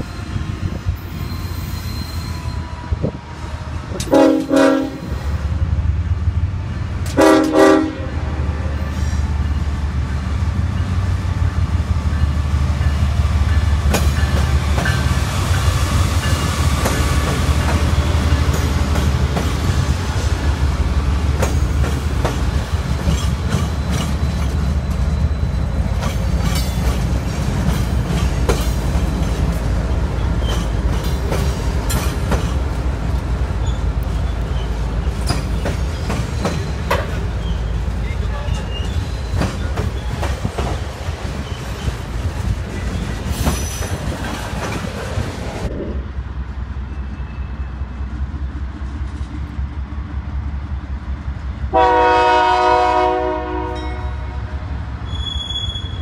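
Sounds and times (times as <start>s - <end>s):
diesel locomotive engines rumbling: 0.0s - 56.0s
wheel squeal: 1.0s - 2.7s, 23.2s - 26.2s, 38.3s - 40.3s, 55.0s - 56.0s
train wheels clacking over rail joints: 12.7s - 45.7s.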